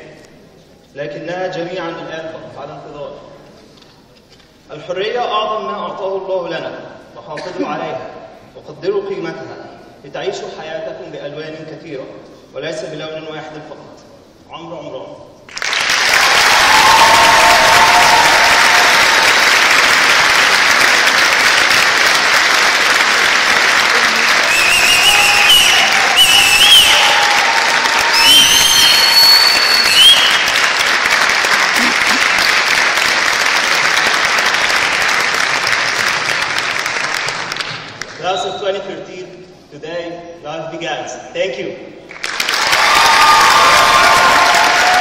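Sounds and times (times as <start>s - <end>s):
audience applause: 15.5s - 38.2s, 42.1s - 45.0s.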